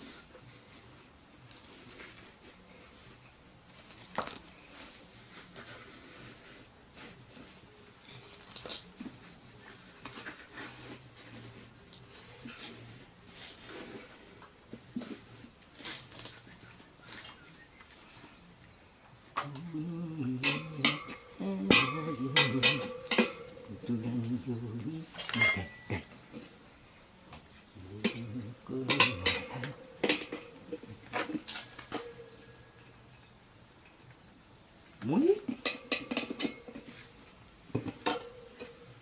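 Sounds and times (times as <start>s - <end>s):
tyre levers clinking on metal rim: 17.1s - 17.6s, 20.4s - 23.7s, 25.1s - 26.4s, 28.1s - 33.3s.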